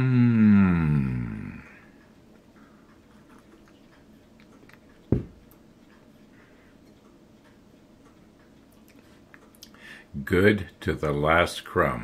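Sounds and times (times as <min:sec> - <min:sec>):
man humming with enjoyment: 0:00.0 - 0:01.8.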